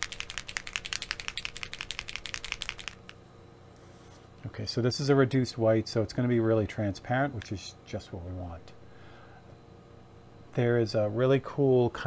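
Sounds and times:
paint bottle ball rattling: 0.0 - 3.1.

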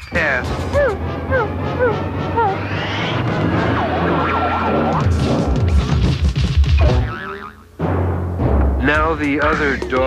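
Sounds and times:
cartoon background music: 0.0 - 10.0
springy boing sound effect: 6.8 - 7.6.

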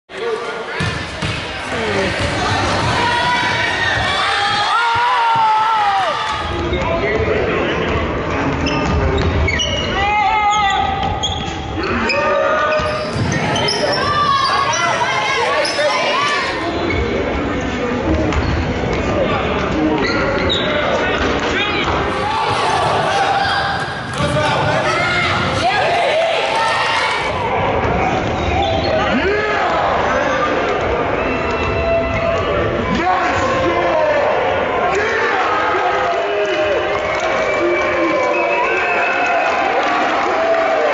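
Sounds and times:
voices echoing in hall: 0.1 - 40.9.

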